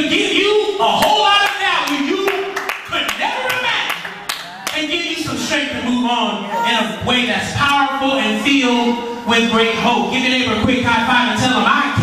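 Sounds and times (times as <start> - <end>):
man preaching through microphone: 0.0 - 12.0
sharp hand claps: 1.0 - 4.8.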